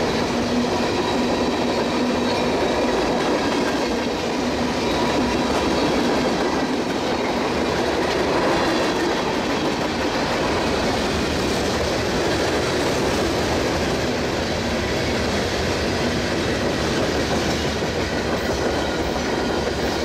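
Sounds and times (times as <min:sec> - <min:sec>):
train wheels rolling on rail: 0:00.0 - 0:20.0.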